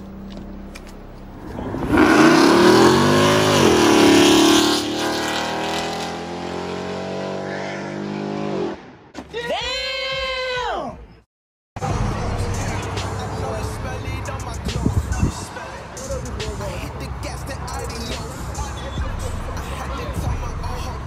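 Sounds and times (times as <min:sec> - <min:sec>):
truck engine accelerating: 0:00.0 - 0:09.0, 0:11.8 - 0:21.0
rising and falling tone: 0:01.3 - 0:09.0.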